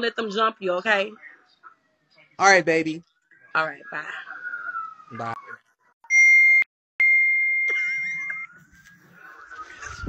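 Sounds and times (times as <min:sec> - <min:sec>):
high electronic beep: 0:06.0 - 0:08.7.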